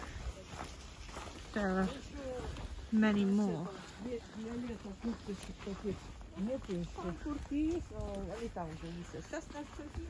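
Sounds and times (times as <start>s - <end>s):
indistinct talking voices: 0.0s - 10.0s.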